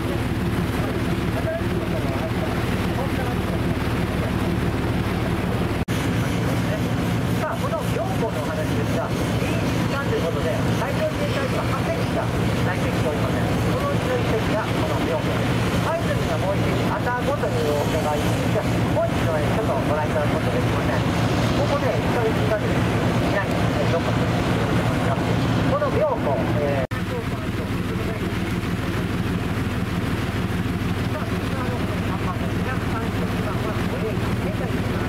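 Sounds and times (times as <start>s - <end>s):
people talking: 0.0s - 4.5s, 6.3s - 28.6s, 31.0s - 35.0s
boat engine droning: 0.0s - 35.0s.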